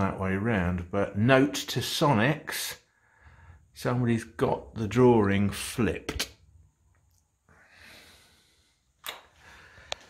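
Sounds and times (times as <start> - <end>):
soft faint breath: 2.8 - 3.8, 7.5 - 10.0.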